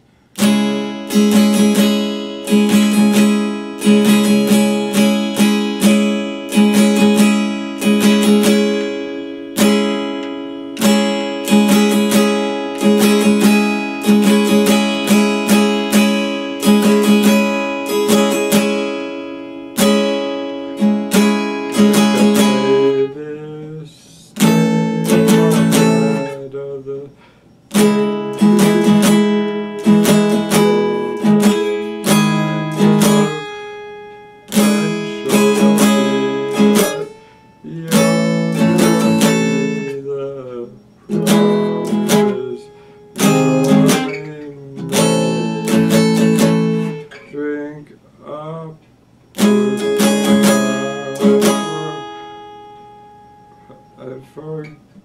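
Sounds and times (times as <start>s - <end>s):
acoustic guitar strummed: 0.0s - 55.0s.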